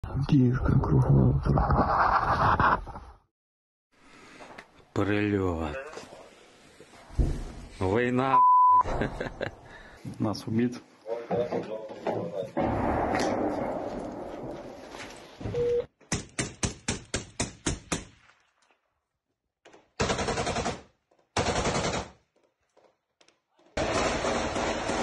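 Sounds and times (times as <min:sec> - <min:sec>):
rapid gunshots: 0:20.0 - 0:22.2, 0:23.8 - 0:25.0.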